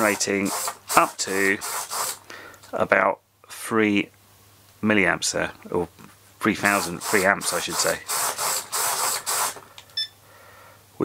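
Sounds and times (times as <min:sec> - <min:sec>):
servos whirring: 0:00.0 - 0:02.3, 0:06.6 - 0:09.6.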